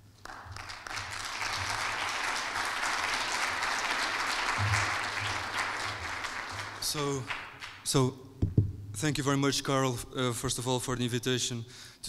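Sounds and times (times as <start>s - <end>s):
small audience clapping: 0.0s - 8.0s.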